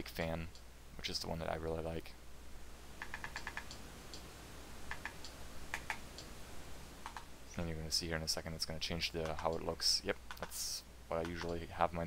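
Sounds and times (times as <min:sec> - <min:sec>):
remote control buttons clicking: 0:03.0 - 0:04.3, 0:04.9 - 0:06.3, 0:07.0 - 0:07.3.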